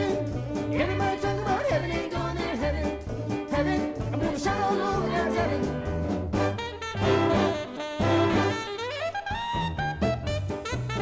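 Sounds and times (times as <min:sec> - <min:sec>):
jazz ensemble playing gospel tune: 0:00.0 - 0:11.0
sliding melody line: 0:00.0 - 0:11.0
stepping bass line: 0:00.0 - 0:11.0.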